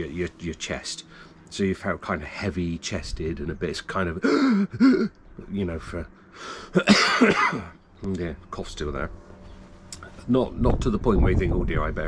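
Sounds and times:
man coughing: 0:04.2 - 0:05.1, 0:06.7 - 0:07.7.

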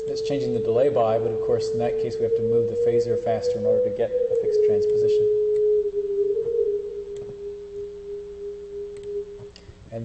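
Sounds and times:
pure electronic tone: 0:00.0 - 0:09.6.

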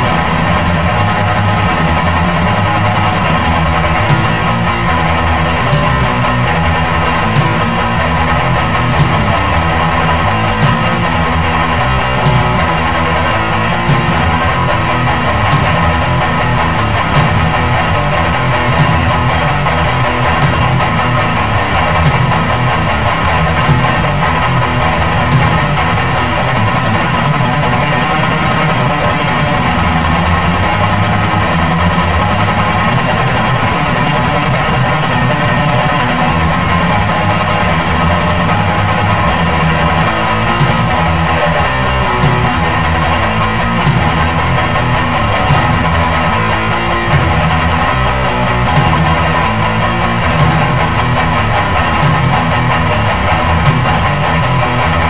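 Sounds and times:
sharp drum hits: 0:00.0 - 0:04.8, 0:20.3 - 0:21.0, 0:22.0 - 0:22.6, 0:26.4 - 0:41.3, 0:42.1 - 0:43.1, 0:47.0 - 0:47.8, 0:48.7 - 0:49.5, 0:50.3 - 0:51.2
heavy metal guitar: 0:00.0 - 0:55.0.

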